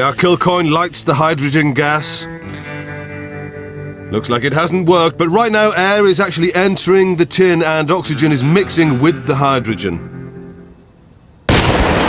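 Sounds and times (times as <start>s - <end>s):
explosion bang: 11.5s - 12.0s.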